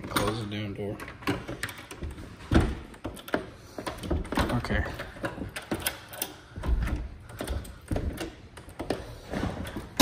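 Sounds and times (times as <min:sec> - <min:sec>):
door knob clicking and rattling: 0:01.0 - 0:09.0.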